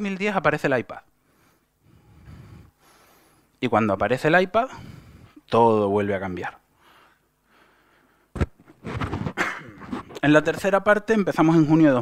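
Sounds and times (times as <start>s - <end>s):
sharp knock: 8.4s - 9.4s.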